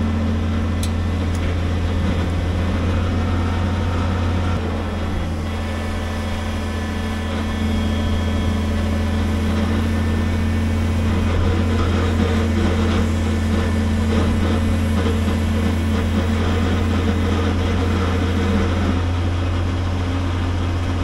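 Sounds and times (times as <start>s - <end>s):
truck engine running: 0.0s - 21.0s.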